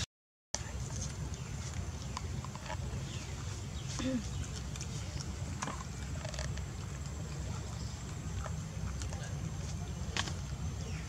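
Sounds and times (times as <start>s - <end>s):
steady low rumble: 0.6s - 11.0s.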